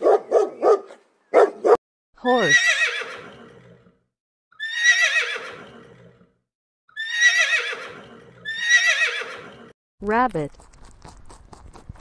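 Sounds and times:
horse whinnying: 2.2s - 3.9s, 4.6s - 6.3s, 6.9s - 9.7s.

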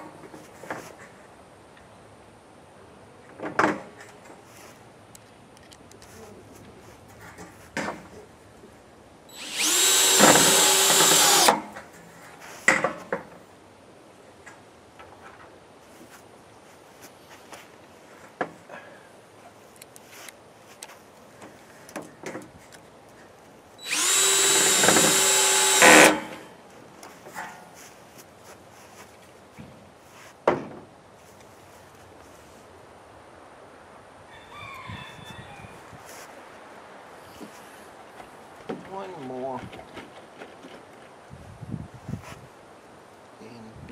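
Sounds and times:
cordless drill driving screws: 9.3s - 11.7s, 23.8s - 26.4s.

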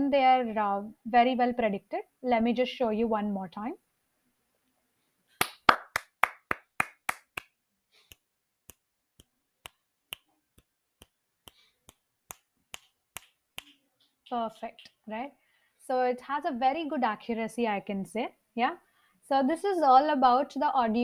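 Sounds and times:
hand claps: 5.4s - 13.8s
finger snaps: 8.1s - 13.8s.

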